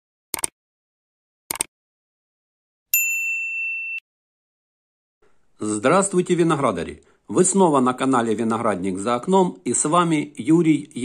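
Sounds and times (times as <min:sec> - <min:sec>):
bright bell ding: 0:02.9 - 0:04.0.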